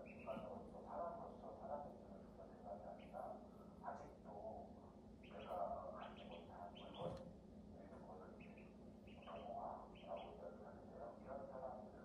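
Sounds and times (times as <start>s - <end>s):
ducklings peeping: 0.0s - 4.2s, 5.2s - 11.8s.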